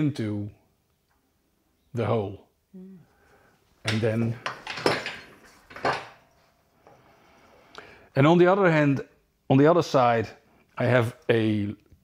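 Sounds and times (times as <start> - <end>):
wood knocking against metal: 3.9 - 6.2.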